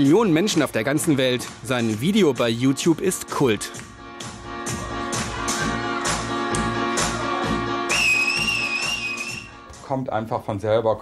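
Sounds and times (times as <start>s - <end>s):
loud two-finger whistle: 7.9s - 9.6s.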